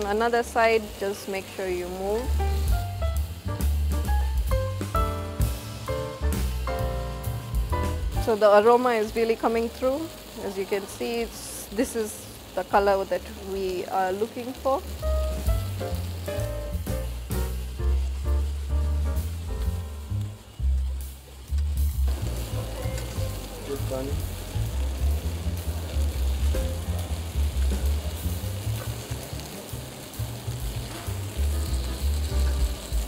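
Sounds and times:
background music: 0.0s - 33.0s
chicken sizzling in a frying pan: 0.0s - 33.0s
metal tongs turning food: 20.6s - 33.0s.

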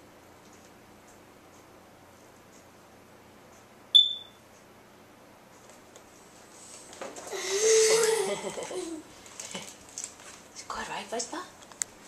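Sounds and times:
short high-pitched beep: 4.0s - 4.4s.

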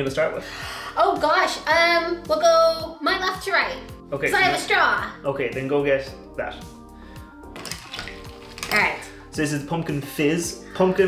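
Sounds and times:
background music: 0.0s - 11.0s
metal straw clinking in glass: 7.6s - 9.1s.

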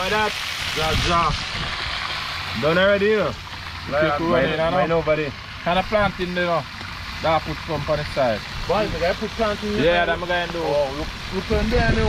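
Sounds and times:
men talking: 0.0s - 1.5s, 2.4s - 12.0s
fish sizzling in oil: 0.0s - 12.0s.

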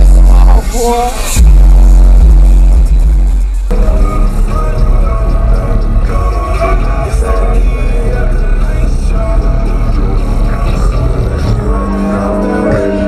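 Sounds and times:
bass-heavy music from car speakers: 0.0s - 13.0s.

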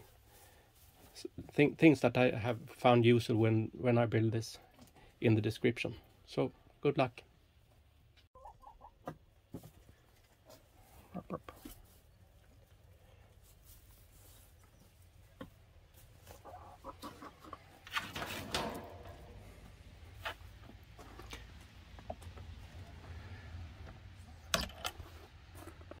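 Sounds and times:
hens clucking: 8.2s - 24.5s.

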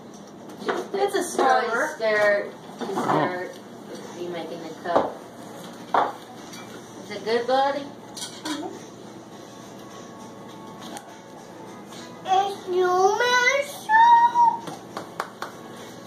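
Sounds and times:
young child singing wordless tune: 12.2s - 14.7s.

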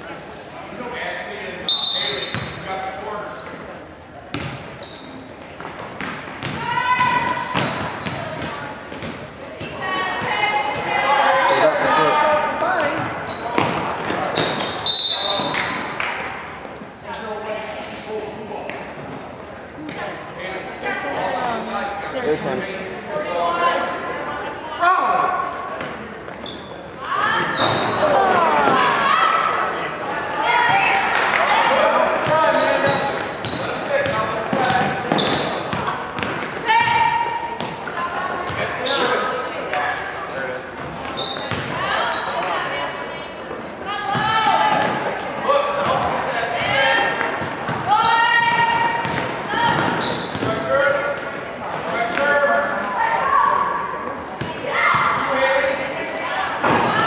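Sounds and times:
voices calling out echoing: 1.6s - 57.0s.

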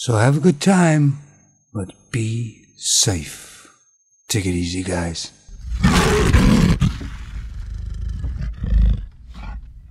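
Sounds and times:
lion growling: 5.5s - 9.9s.

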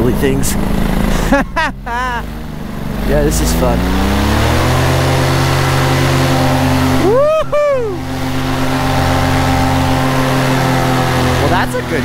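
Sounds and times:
paramotor engine and propeller running: 0.0s - 12.0s.

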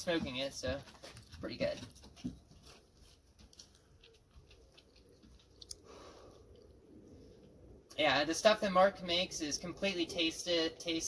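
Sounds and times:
soft exhale: 5.8s - 6.5s.

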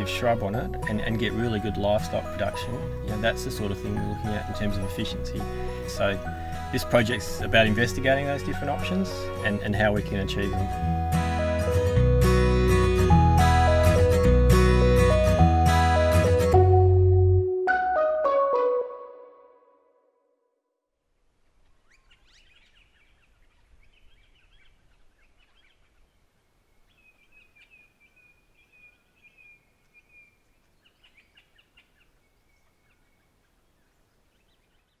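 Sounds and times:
music: 0.0s - 20.2s
outdoor background noise: 21.0s - 35.0s
birds chirping and calling: 21.6s - 26.1s, 26.8s - 35.0s.

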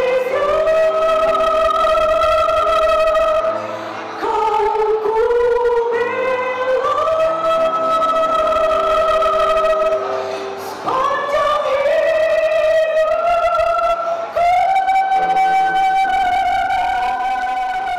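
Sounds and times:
woman singing into a microphone: 0.0s - 17.9s.

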